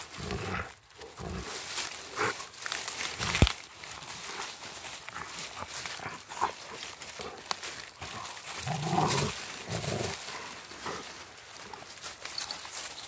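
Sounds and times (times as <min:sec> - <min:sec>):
leaves rustling: 0:00.0 - 0:13.0
twigs cracking: 0:00.0 - 0:13.0
dog growling: 0:08.0 - 0:11.0.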